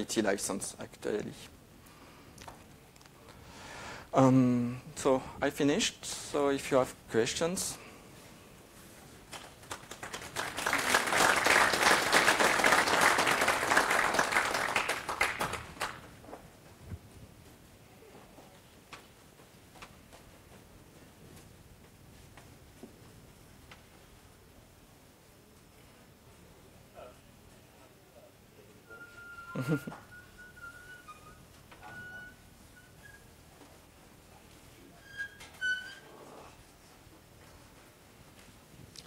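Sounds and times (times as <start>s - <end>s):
microphone feedback whistling: 28.8s - 33.3s.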